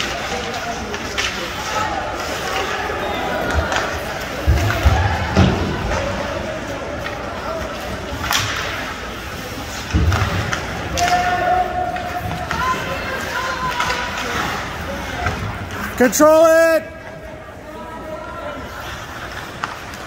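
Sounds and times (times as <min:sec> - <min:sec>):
stick and puck clacks: 0:00.0 - 0:02.8, 0:03.4 - 0:16.0, 0:18.8 - 0:20.0
murmur of voices: 0:00.0 - 0:20.0.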